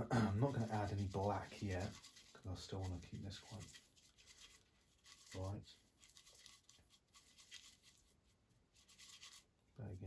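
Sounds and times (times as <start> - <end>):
paintbrush rubbing on palette: 0.4 - 9.7.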